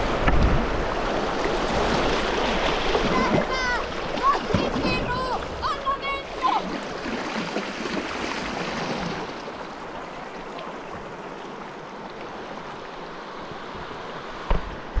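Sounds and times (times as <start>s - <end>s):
river water rushing: 0.0s - 15.0s.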